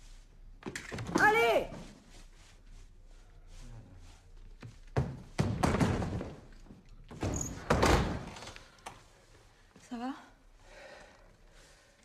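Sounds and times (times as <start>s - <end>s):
door slamming: 7.2s - 8.4s.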